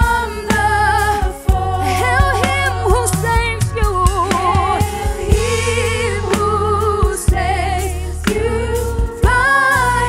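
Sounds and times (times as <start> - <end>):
instrumental band accompaniment: 0.0 - 10.0
woman singing a hymn: 0.0 - 10.0.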